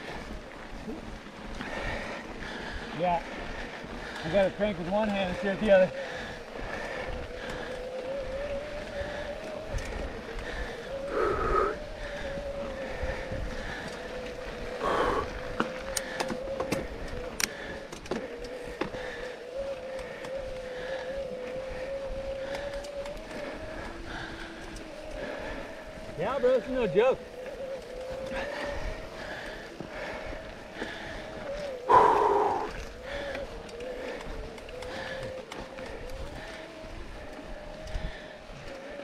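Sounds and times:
bikes mechanical whine: 0:00.0 - 0:39.0.

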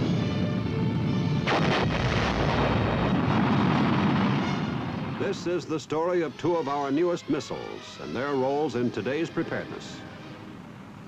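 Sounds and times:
music: 0:00.0 - 0:01.5, 0:05.5 - 0:10.7
sharp crack: 0:01.5 - 0:05.6.

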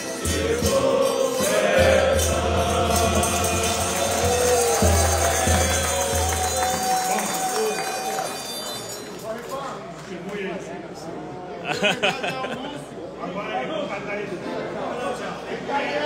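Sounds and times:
men singing: 0:00.0 - 0:06.8.

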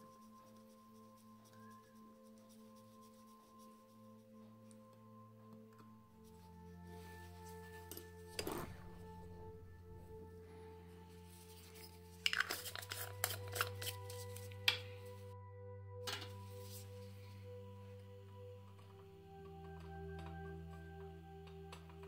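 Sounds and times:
soft bell-like background music: 0:00.0 - 0:22.0
metal tools clicking and tapping: 0:12.2 - 0:13.9.

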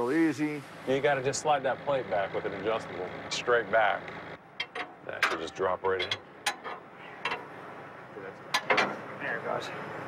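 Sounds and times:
metal clanks: 0:04.6 - 0:07.5.

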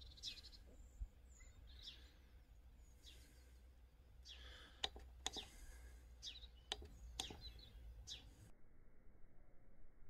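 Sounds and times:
faint bird chirps: 0:00.0 - 0:09.9.

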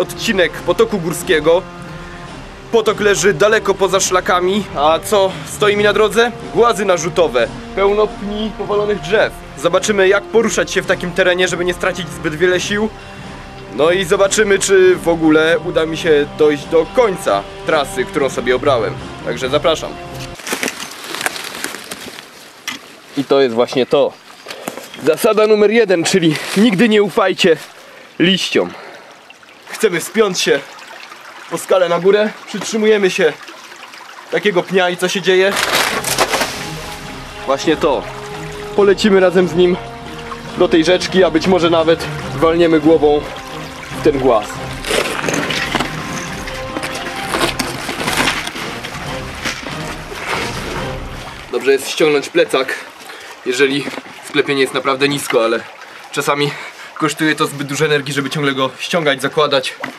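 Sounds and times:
background music: 0:00.0 - 0:20.4, 0:35.0 - 0:52.3
clothing scraping against rock: 0:20.2 - 0:23.6, 0:26.0 - 0:27.8, 0:35.4 - 0:37.2, 0:44.6 - 0:51.5
leaves and twigs crackling underfoot: 0:20.2 - 0:28.0, 0:35.4 - 0:38.8, 0:43.3 - 0:51.6
guitar music: 0:35.8 - 0:51.5.

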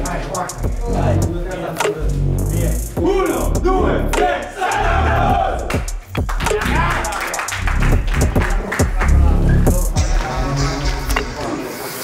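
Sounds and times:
music with steady beat: 0:00.0 - 0:12.0
team chant: 0:03.0 - 0:11.5
players shouting together: 0:04.1 - 0:05.8, 0:06.4 - 0:07.4.

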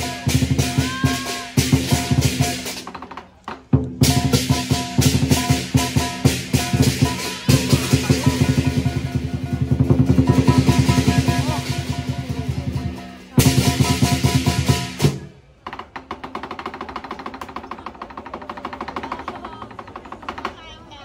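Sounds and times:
cymbals ringing: 0:00.0 - 0:02.8, 0:04.0 - 0:15.3
large drum beaten rapidly: 0:00.0 - 0:20.6.

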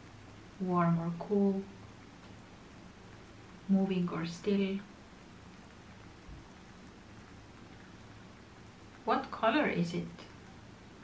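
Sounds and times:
light rain hiss: 0:00.0 - 0:11.0.

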